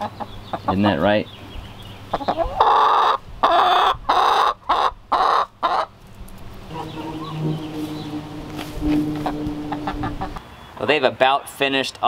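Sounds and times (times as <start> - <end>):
hens clucking: 0.0 - 1.2, 2.1 - 10.4
low steady hum: 5.9 - 10.4.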